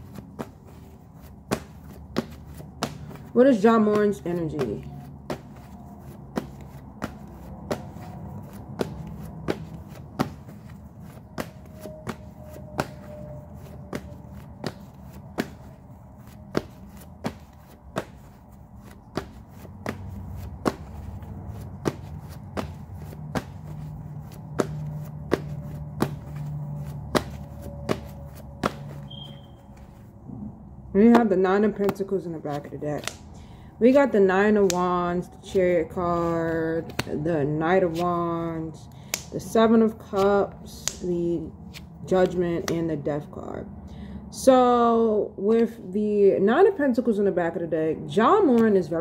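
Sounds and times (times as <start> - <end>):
cards being shuffled: 0.0 - 30.1.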